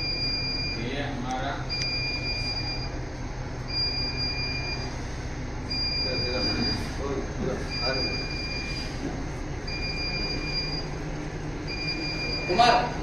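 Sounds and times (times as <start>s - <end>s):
steady low hum: 0.0s - 13.0s
high electronic beeps: 7.7s - 8.8s, 9.7s - 10.9s, 11.7s - 12.8s.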